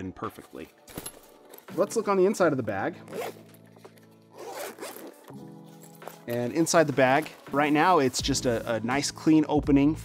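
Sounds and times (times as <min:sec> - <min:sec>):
quiet background music: 0:00.0 - 0:10.0
zipper pulled open: 0:03.0 - 0:07.3.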